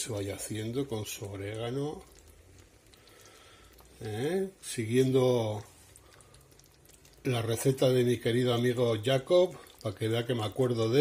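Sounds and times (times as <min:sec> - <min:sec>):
sauce simmering in frying pan: 0:00.0 - 0:11.0.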